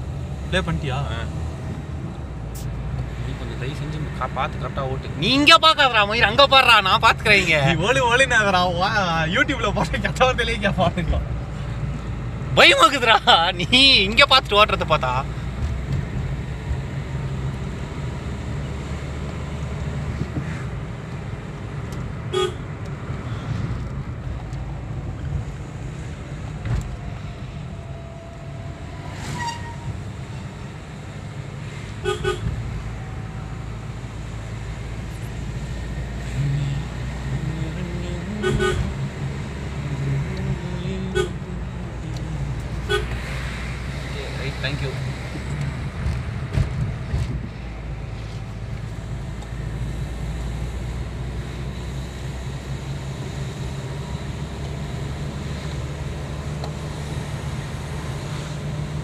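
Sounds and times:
vehicle engine and road noise: 0.0 - 59.0
short horn toots: 38.4 - 38.9.

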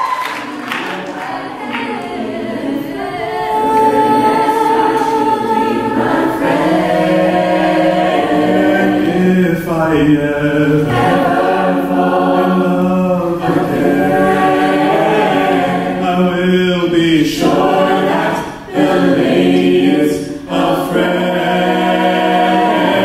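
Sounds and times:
a cappella group singing harmony: 0.0 - 23.0.

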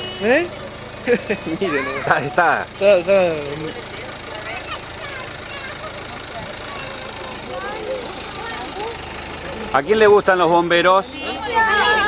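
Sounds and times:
truck engine idling: 0.0 - 12.0
faint children's voices: 3.8 - 9.1, 11.1 - 12.0.

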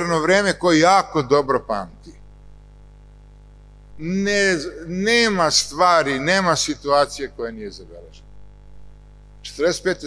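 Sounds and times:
man speaking into a microphone: 0.0 - 2.2, 4.0 - 8.2, 9.4 - 10.0
electrical mains hum: 0.0 - 10.0.

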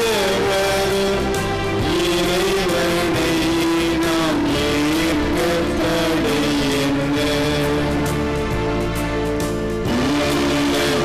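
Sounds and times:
slow hymn music: 0.0 - 11.0.

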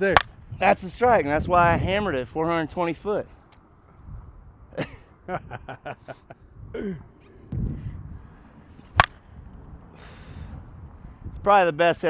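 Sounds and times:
bat striking ball: 0.1 - 0.4, 8.8 - 9.3
people laughing: 4.7 - 6.4.

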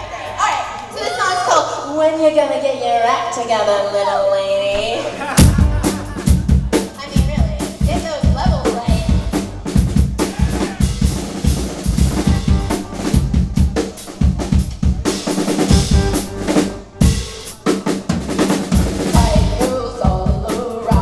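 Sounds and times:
drum kit beat: 4.8 - 21.0.

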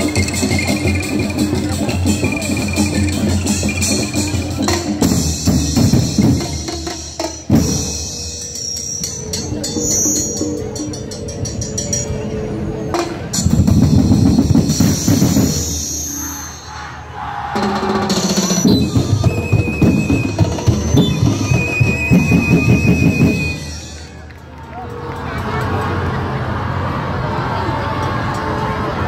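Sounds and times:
drum ensemble playing: 0.0 - 12.2, 12.9 - 16.7, 17.4 - 24.3.

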